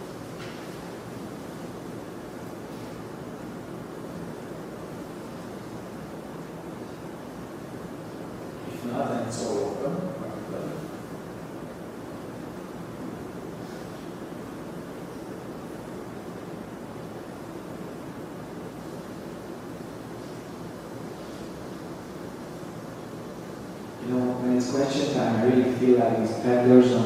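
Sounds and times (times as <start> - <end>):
room noise hiss and rumble: 0.0 - 27.0.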